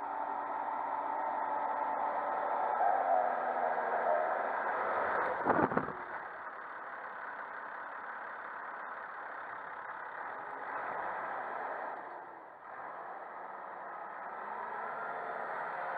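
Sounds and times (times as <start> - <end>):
tractor diesel engine drone: 0.0 - 15.9.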